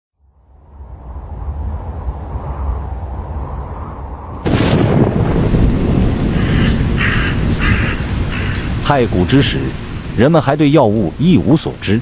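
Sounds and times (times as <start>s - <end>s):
low rumbling ambience: 0.2s - 8.8s
loud crash and noisy roar: 0.6s - 7.9s
bird calling: 6.3s - 8.8s.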